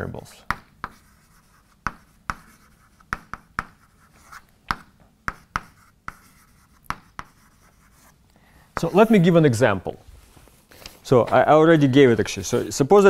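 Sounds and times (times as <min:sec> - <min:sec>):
chalk tapping on chalkboard: 0:00.4 - 0:08.2
chalk scratching: 0:00.8 - 0:08.2.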